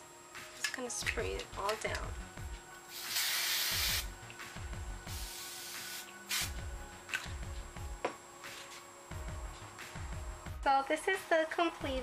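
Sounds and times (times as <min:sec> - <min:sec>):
hairspray spraying: 0:02.9 - 0:04.2, 0:05.0 - 0:07.3.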